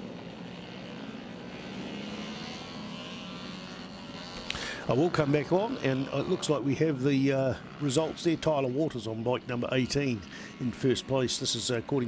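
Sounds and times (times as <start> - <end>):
small motorcycle engines buzzing: 0.0 - 12.0.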